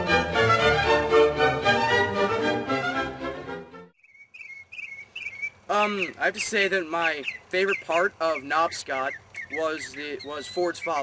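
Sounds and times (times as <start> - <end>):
bird singing warbled phrases: 4.0 - 11.0.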